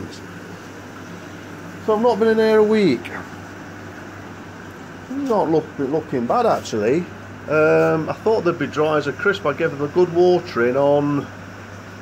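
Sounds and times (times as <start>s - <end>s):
even hiss: 0.0s - 12.0s
steady low hum: 0.0s - 12.0s.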